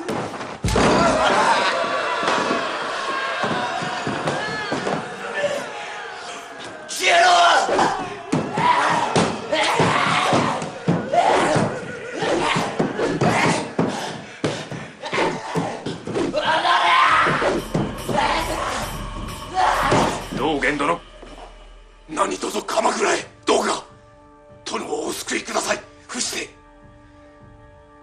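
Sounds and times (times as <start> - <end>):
person speaking film dialogue: 22.1 - 26.6.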